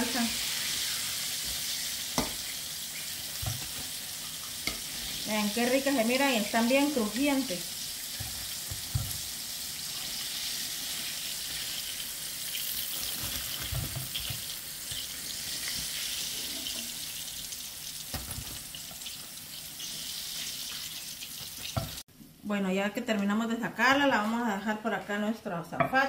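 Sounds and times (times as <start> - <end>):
oil sizzling in a frying pan: 0.0 - 22.1.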